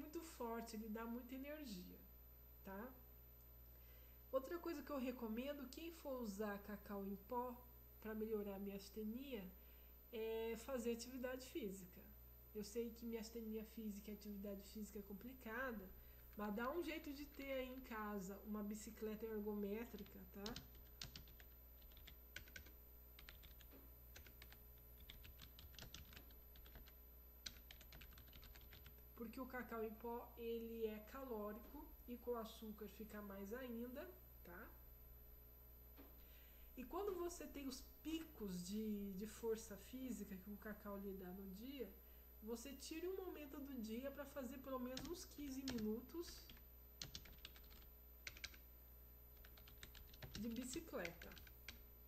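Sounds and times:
low room tone hum: 0.0s - 52.0s.

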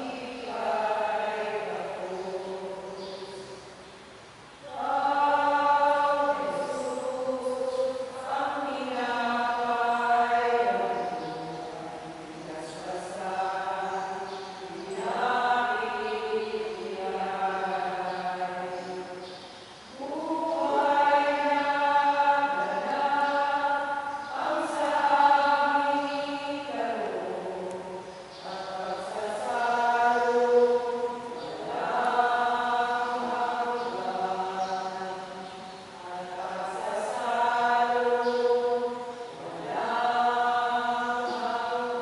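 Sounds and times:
voices singing a hymn: 0.0s - 42.0s.

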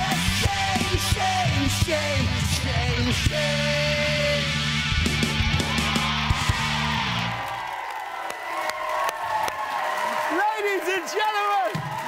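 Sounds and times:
audience cheering and clapping: 4.7s - 12.0s.

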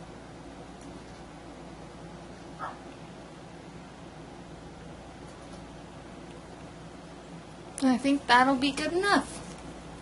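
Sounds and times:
low room hiss and hum: 0.0s - 10.0s.

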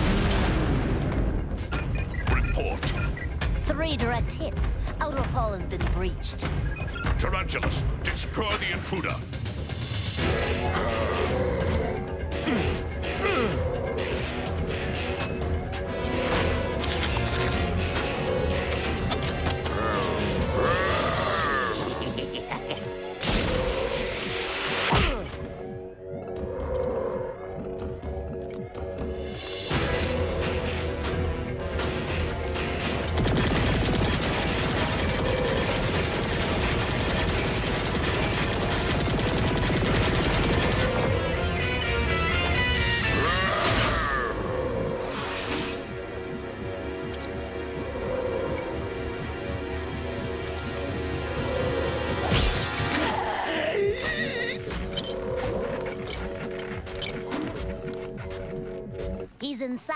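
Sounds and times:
dramatic orchestral music: 0.0s - 59.4s
rapid-fire cartoon weapon shots: 32.8s - 41.4s.

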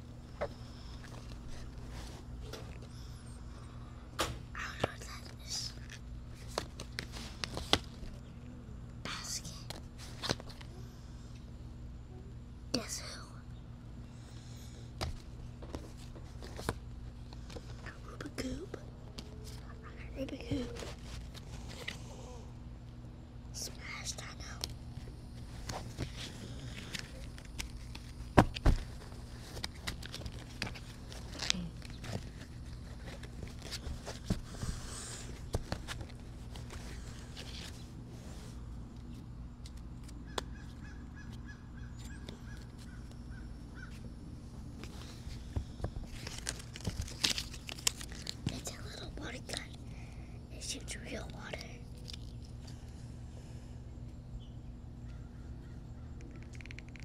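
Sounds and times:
child's quiet voice: 4.6s - 5.8s, 8.6s - 9.7s, 12.1s - 13.5s, 17.9s - 18.9s, 19.5s - 20.9s, 23.6s - 24.6s, 31.4s - 31.8s, 48.5s - 51.9s
paper cards rustling: 4.6s - 8.3s, 9.1s - 10.7s, 15.0s - 22.0s, 23.8s - 38.0s, 38.8s - 43.2s, 44.8s - 49.8s
plastic wrapping crinkling: 25.4s - 34.6s, 46.1s - 49.7s
cards snapping clicks: 39.6s - 40.7s.

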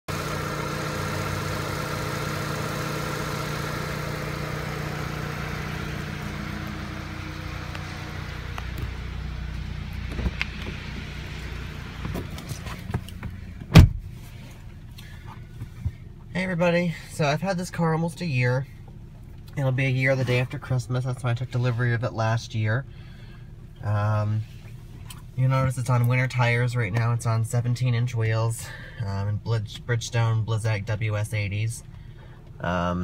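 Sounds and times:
car engine idling: 0.0s - 33.0s
quiet cabin sound: 0.9s - 33.0s
car door shutting: 9.9s - 11.1s, 11.9s - 14.2s.

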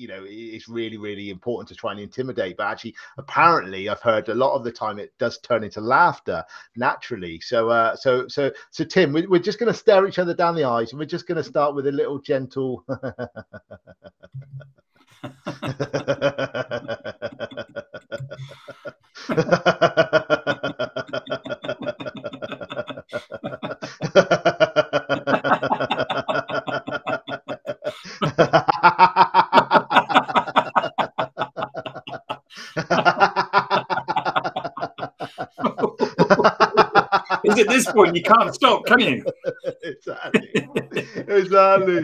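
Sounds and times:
men laughing: 12.9s - 14.2s, 15.2s - 42.0s.

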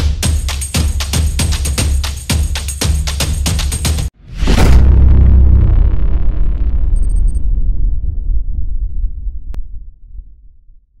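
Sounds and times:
deep rumbling boom: 4.2s - 11.0s.

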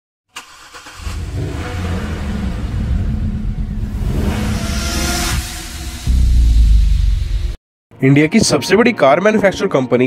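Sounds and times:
car engine rumble: 0.4s - 7.6s.

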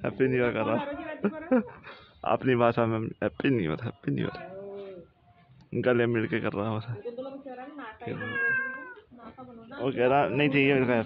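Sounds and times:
cat yowling: 8.1s - 9.0s.

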